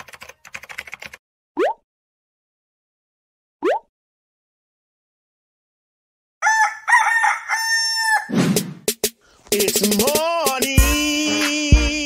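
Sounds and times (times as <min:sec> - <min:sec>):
rooster crowing: 0:06.4 - 0:08.3.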